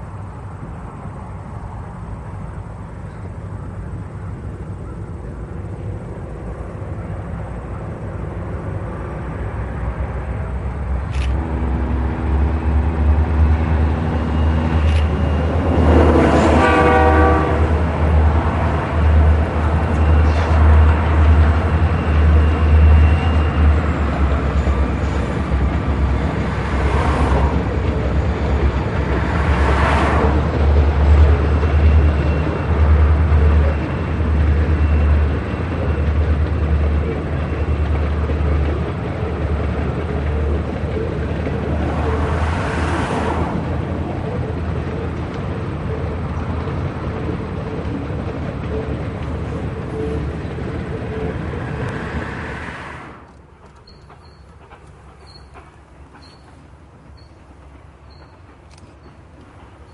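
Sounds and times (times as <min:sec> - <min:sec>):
diesel locomotives passing: 0:00.0 - 0:59.9
wheels rumbling on rail: 0:00.0 - 0:59.9.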